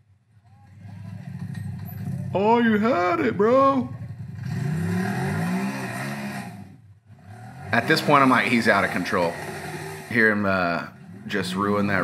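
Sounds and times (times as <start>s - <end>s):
utv engine revving hard: 4.2s - 12.0s.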